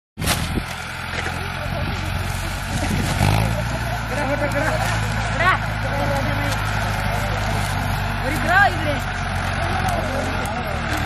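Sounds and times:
tractor diesel engine idling: 0.5 - 11.0
people talking: 1.1 - 11.0.

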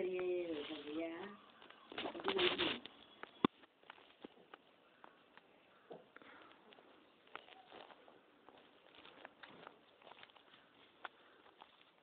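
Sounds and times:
newspaper rustling: 0.5 - 3.0.

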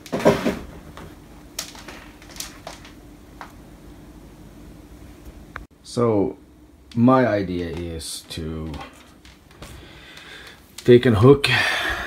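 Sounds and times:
copper wire pieces clicking: 1.5 - 3.6.

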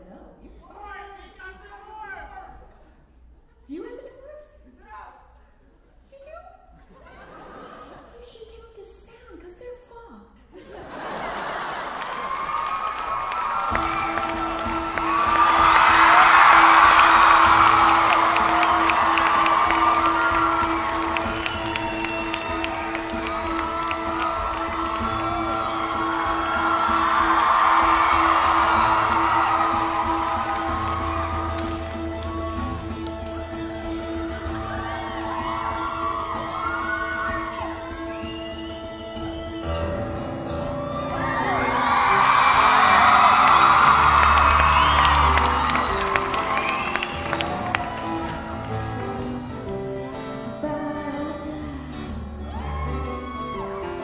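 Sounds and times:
audience cheering and whooping: 10.7 - 49.6, 52.4 - 54.0.

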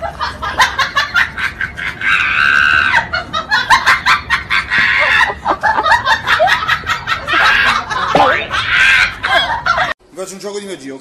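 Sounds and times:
shrill cackling laughter: 0.0 - 10.0.

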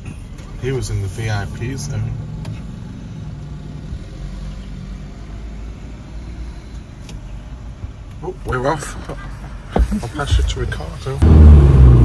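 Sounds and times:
low vehicle rumble: 0.0 - 12.0
sports car engine pulling away: 11.2 - 12.0.

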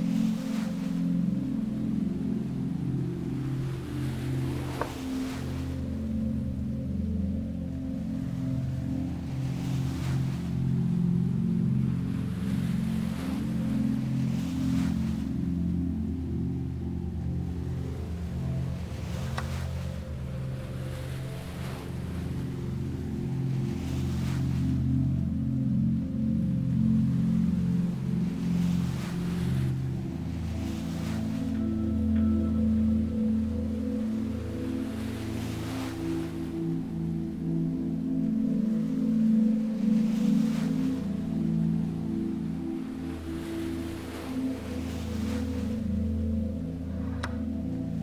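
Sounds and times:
ambient drone chords: 0.0 - 48.0
sea waves washing in: 0.0 - 48.0.

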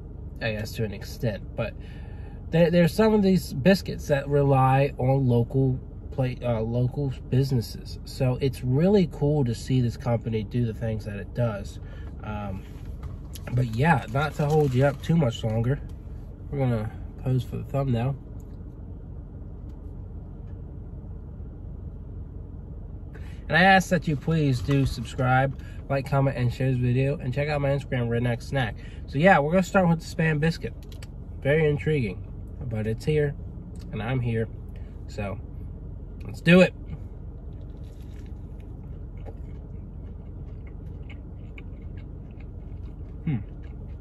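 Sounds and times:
car cabin low rumble: 0.0 - 44.0
steady low hum: 0.0 - 44.0
person chewing with wet clicks: 37.7 - 44.0.

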